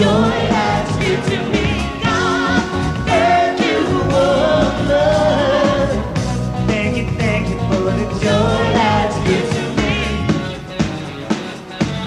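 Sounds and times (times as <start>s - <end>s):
live pop band music: 0.0s - 12.0s.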